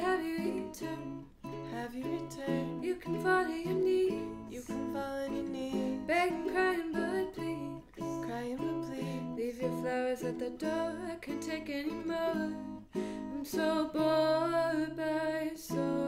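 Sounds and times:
acoustic guitar strumming: 0.0s - 15.0s
person singing: 0.0s - 16.0s
ukulele strumming: 0.0s - 16.0s.

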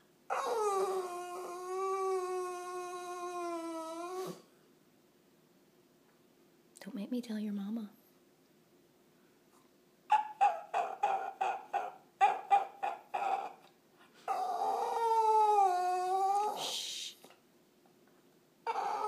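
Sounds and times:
small dog whining: 0.3s - 4.5s, 10.1s - 13.7s, 14.3s - 16.7s, 18.6s - 19.0s.

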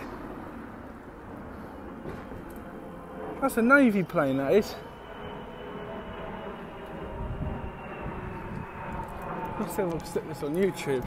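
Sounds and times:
aircraft engine drone overhead: 0.0s - 11.0s.

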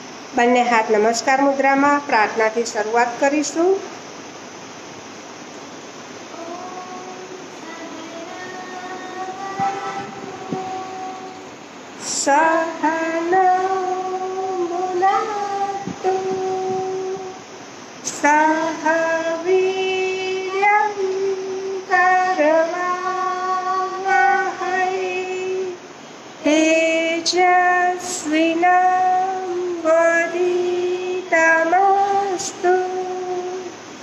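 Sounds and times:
woman singing solo: 6.3s - 34.0s.

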